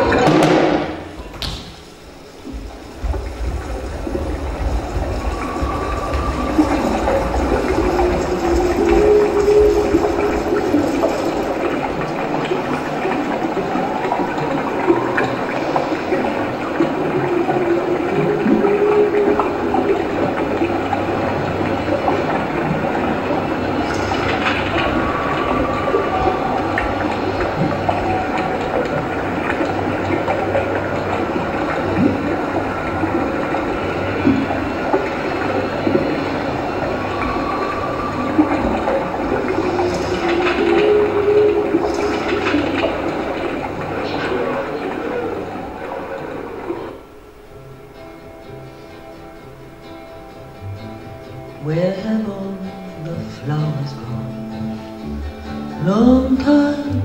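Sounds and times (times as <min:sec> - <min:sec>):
rushing rumbling noise: 0:00.0 - 0:51.6
long wavering tones: 0:02.0 - 0:47.4.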